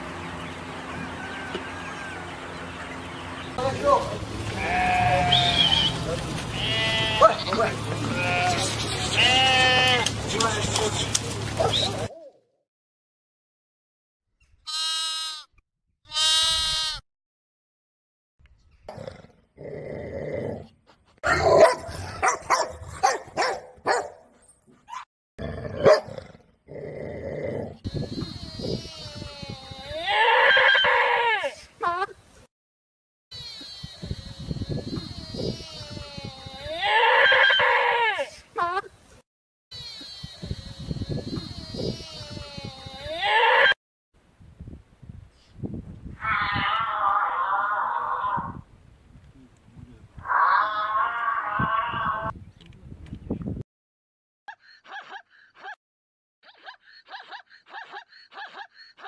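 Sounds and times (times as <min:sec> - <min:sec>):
goats and sheep bleating: 0:04.5 - 0:10.1, 0:14.7 - 0:15.5, 0:16.1 - 0:17.0, 0:27.8 - 0:31.7, 0:33.3 - 0:38.4, 0:39.7 - 0:43.8.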